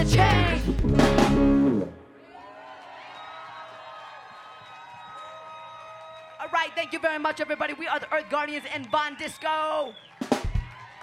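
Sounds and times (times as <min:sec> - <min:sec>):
distant audience cheering: 0:02.1 - 0:11.0.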